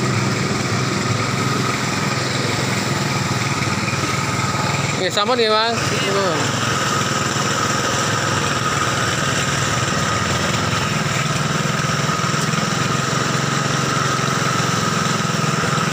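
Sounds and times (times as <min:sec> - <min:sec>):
mechanical drone with high whine: 0:00.0 - 0:13.4.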